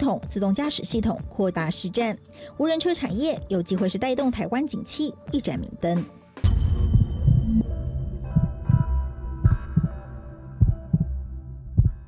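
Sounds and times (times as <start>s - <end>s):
deep bass thumps: 8.2s - 10.0s, 10.6s - 12.0s.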